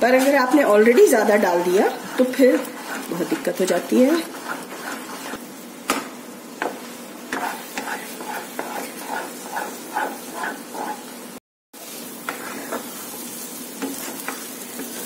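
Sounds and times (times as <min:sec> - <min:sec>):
spatula scraping a pan: 0:00.0 - 0:05.4, 0:06.6 - 0:11.2, 0:11.8 - 0:15.0
food sizzling in a pan: 0:00.0 - 0:15.0.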